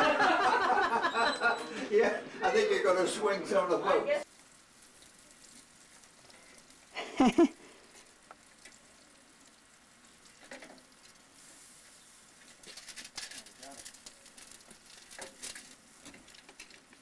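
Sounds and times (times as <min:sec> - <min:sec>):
turkey sizzling on grill: 0:04.2 - 0:17.0.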